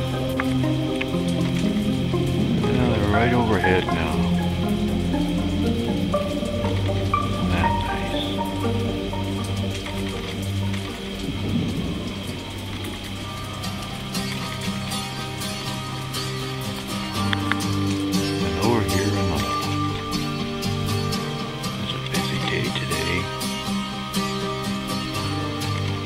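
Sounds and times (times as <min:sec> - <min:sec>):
ambient music with held notes: 0:00.0 - 0:26.0
faint rain-like crackling: 0:00.0 - 0:26.0
low steady drone: 0:00.0 - 0:26.0.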